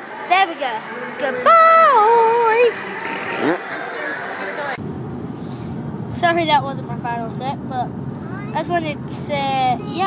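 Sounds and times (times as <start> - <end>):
background chatter: 0.0 - 4.8.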